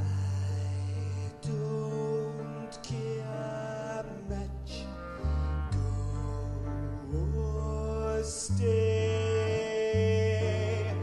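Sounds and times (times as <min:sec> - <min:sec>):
low sustained bass notes: 0:00.0 - 0:11.0
man singing held line: 0:05.8 - 0:11.0.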